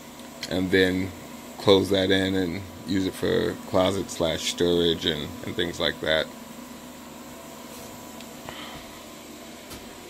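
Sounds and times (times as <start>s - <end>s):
low room hum and hiss: 0.0s - 10.0s.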